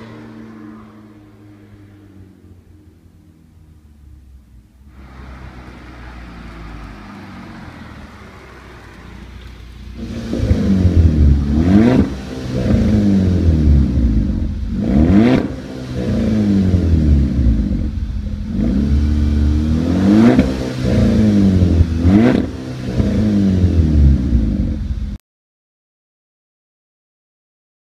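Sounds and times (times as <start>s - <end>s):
car engine revving: 0.0s - 25.2s.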